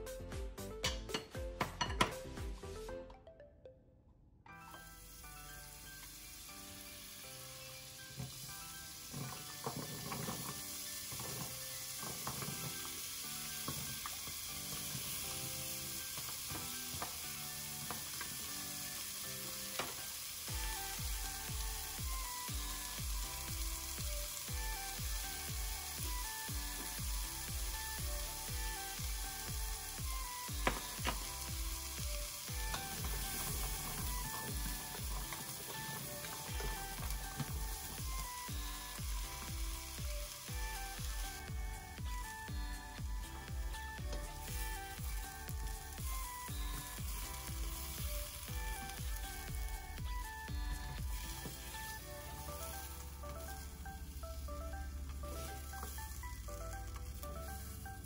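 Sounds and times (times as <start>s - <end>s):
upbeat background music: 0.0s - 58.0s
carrots sizzling in oil: 4.7s - 58.0s.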